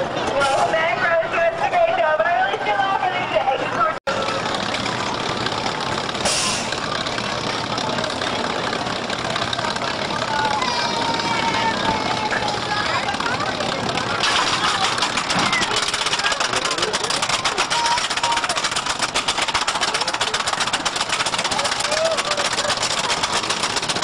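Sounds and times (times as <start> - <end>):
roller coaster chain lift clatter: 3.8 - 24.0
people's voices: 5.5 - 24.0.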